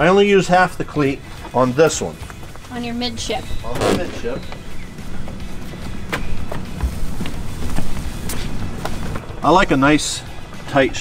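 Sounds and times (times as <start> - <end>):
dull thud: 3.7 - 4.9
steady low rumble: 3.7 - 5.4.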